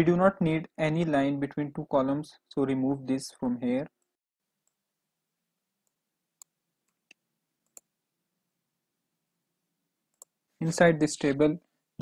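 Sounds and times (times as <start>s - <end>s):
computer mouse clicks: 5.8s - 7.9s, 10.1s - 10.4s.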